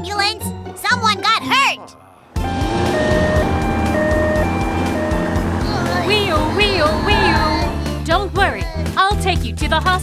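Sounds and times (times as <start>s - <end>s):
two-tone ambulance siren: 2.4s - 7.9s
upbeat children's song: 5.6s - 10.0s.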